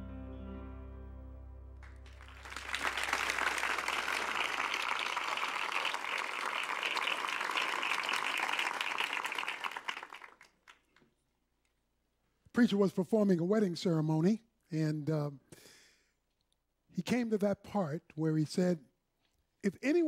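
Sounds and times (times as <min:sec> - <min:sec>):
audience applauding: 0:01.8 - 0:11.0.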